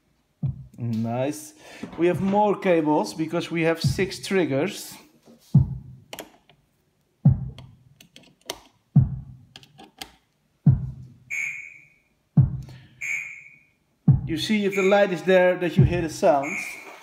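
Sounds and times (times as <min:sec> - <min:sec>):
low electronic drum hits: 0:00.4 - 0:00.7, 0:03.9 - 0:04.2, 0:05.6 - 0:06.0, 0:07.3 - 0:07.6, 0:09.0 - 0:09.4, 0:10.7 - 0:11.0, 0:12.4 - 0:12.8, 0:14.1 - 0:14.4, 0:15.8 - 0:16.2
high ringing tone: 0:11.3 - 0:12.1, 0:13.0 - 0:13.7.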